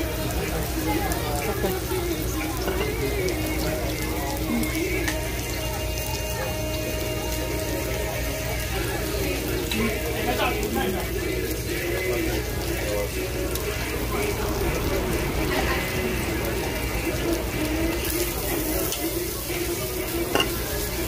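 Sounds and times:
background music: 0:00.0 - 0:21.0
background voices: 0:00.0 - 0:21.0
meat sizzling on a grill: 0:00.0 - 0:21.0.

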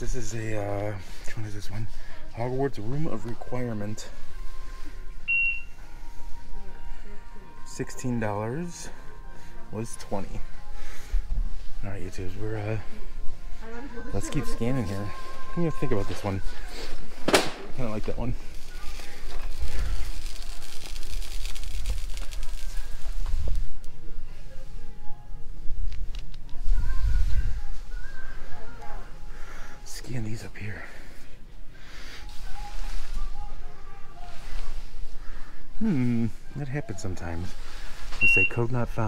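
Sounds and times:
faint store background noise: 0:00.0 - 0:39.0
short electronic beep: 0:05.3 - 0:05.8, 0:38.2 - 0:38.7.

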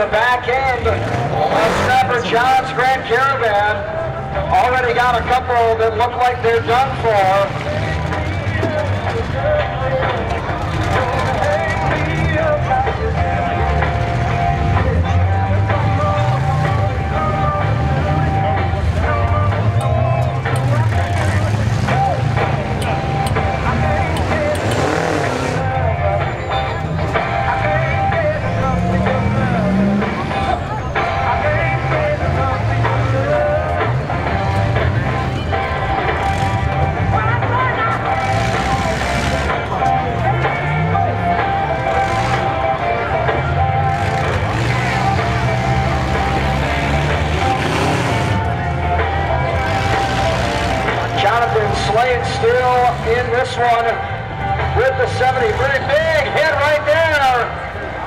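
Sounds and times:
car engines revving: 0:00.0 - 0:58.0
crowd chatter: 0:00.0 - 0:58.0.

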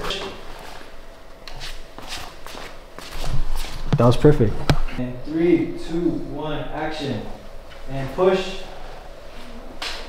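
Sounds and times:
footsteps and shuffling: 0:00.0 - 0:05.0.

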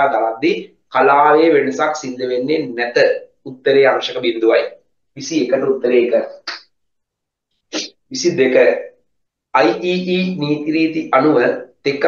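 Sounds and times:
man speaking: 0:00.0 - 0:06.7, 0:07.7 - 0:12.0.

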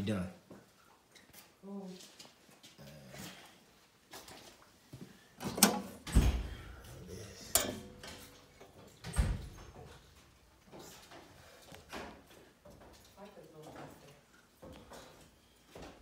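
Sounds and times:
metal panel door clicks: 0:05.5 - 0:06.4, 0:07.5 - 0:09.6.

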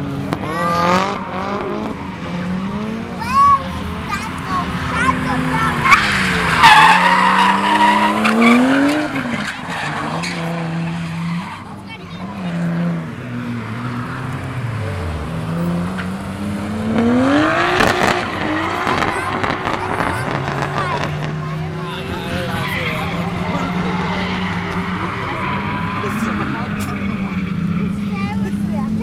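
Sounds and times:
car engine revving: 0:00.0 - 0:29.0
tyres squealing: 0:03.2 - 0:12.6, 0:18.0 - 0:28.6.

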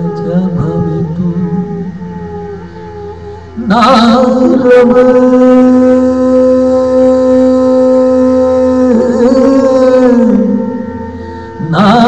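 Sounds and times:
man singing long note: 0:00.0 - 0:12.0.

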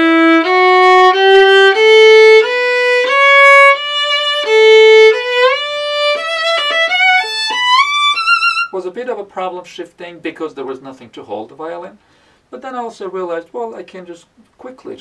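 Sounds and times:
solo violin playing scale: 0:00.0 - 0:08.7.

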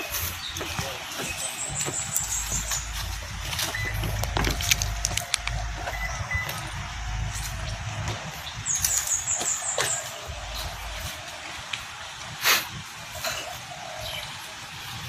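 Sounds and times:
low rumble: 0:01.0 - 0:12.4.

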